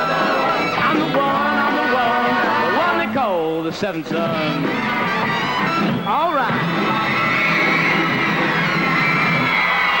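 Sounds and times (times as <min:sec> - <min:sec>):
rock and roll band playing: 0:00.0 - 0:10.0
audience screaming and cheering: 0:04.6 - 0:10.0.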